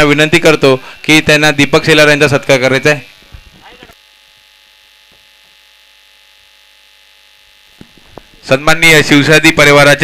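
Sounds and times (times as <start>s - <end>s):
steady electrical hum: 0.0s - 10.0s.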